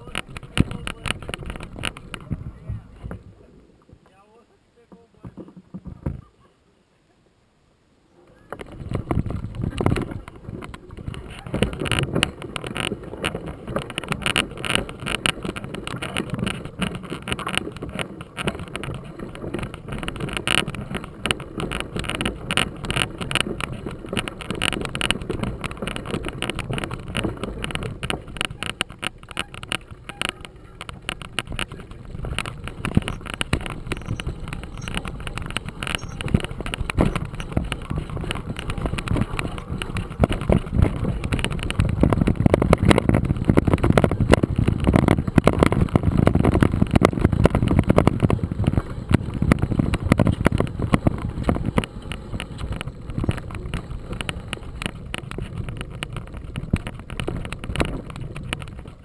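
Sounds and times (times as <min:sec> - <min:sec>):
bike rattling over bumps: 0:00.0 - 0:03.4, 0:08.3 - 0:59.0
bike tyres on dirt: 0:00.0 - 0:04.3, 0:08.3 - 0:59.0.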